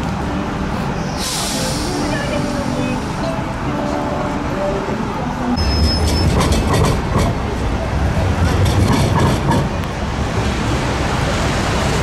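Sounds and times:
diesel locomotive rumbling past: 0:00.0 - 0:12.0
high squeal: 0:05.6 - 0:06.4.

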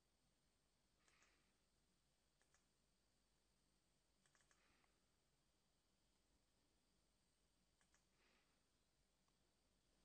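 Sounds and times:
faint computer mouse clicks: 0:01.0 - 0:01.4, 0:02.4 - 0:02.7, 0:04.2 - 0:05.0, 0:07.8 - 0:08.2.

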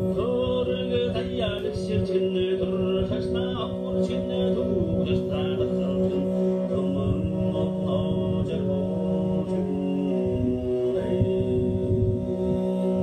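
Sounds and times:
plucked string instrument: 0:00.0 - 0:13.0
throat singing drone: 0:00.0 - 0:13.0.

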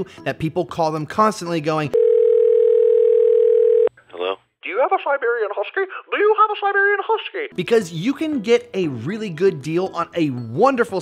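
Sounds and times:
telephone dial tone: 0:02.0 - 0:03.9
phone call speech: 0:04.1 - 0:07.6.

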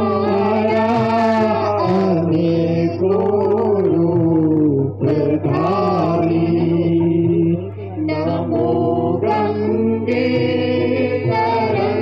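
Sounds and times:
person chanting: 0:00.0 - 0:12.0
steady low hum: 0:00.0 - 0:12.0.

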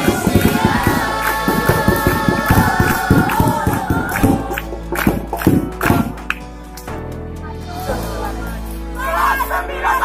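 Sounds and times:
group singing together: 0:00.0 - 0:05.7, 0:07.7 - 0:10.0
hands clapping: 0:00.0 - 0:07.0.

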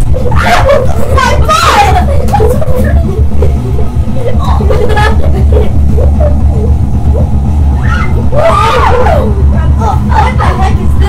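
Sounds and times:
distorted low rumble: 0:00.0 - 0:11.0
faint music: 0:00.0 - 0:11.0
voices: 0:00.0 - 0:11.0.

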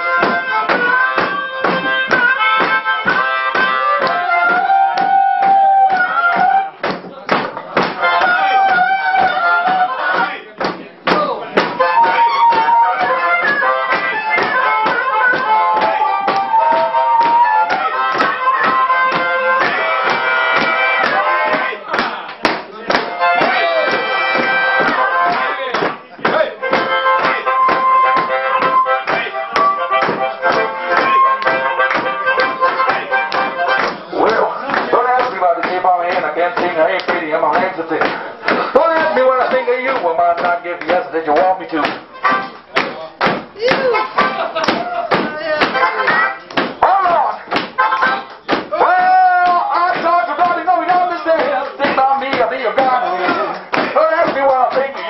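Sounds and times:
harmonica solo: 0:00.0 - 0:06.8, 0:08.0 - 0:10.1, 0:11.8 - 0:21.8, 0:23.1 - 0:25.7, 0:26.6 - 0:34.6, 0:42.1 - 0:42.7, 0:43.6 - 0:44.6, 0:45.5 - 0:46.5, 0:47.7 - 0:48.3
rhythmic band accompaniment: 0:00.0 - 0:55.0.

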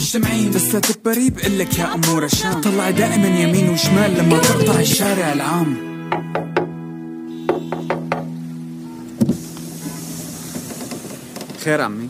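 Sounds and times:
held music chord: 0:02.6 - 0:07.5
thump: 0:09.2 - 0:09.5.

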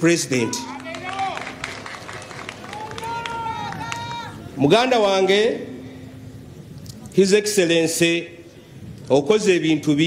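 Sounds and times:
outdoor crowd noise: 0:00.0 - 0:10.0
scattered claps: 0:00.5 - 0:04.5.

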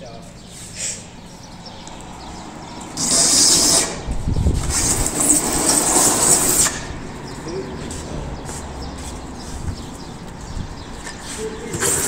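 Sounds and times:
box scraping across paving: 0:03.0 - 0:06.9, 0:11.3 - 0:12.0.

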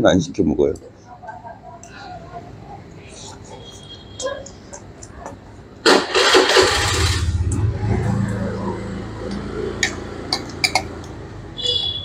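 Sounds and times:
motorbike engine running: 0:06.1 - 0:10.3.

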